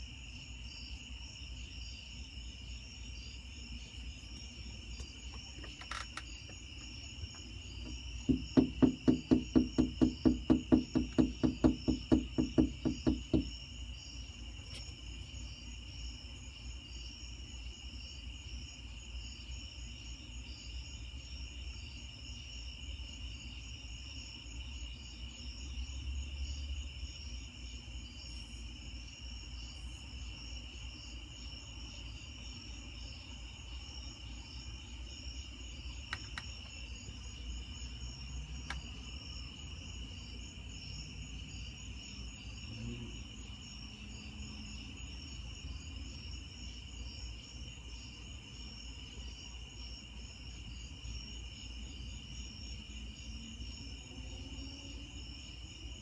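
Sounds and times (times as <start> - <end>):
night insects chirping: 0.0 - 56.0.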